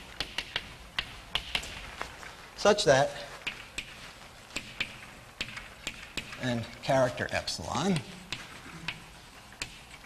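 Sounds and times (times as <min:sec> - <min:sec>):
chalk tapping on blackboard: 0:00.0 - 0:01.9, 0:03.4 - 0:10.0.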